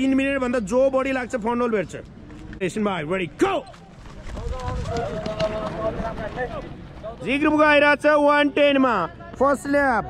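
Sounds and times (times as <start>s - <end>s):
feet pounding on dirt: 3.4s - 7.6s.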